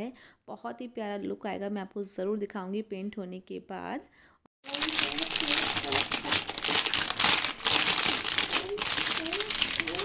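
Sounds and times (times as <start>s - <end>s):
plastic bag crinkling: 4.6s - 10.0s.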